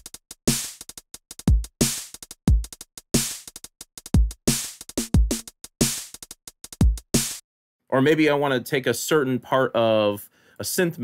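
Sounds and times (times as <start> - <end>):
drum machine kick and snare: 0.0 - 7.4
fast closed hi-hats: 0.0 - 7.4.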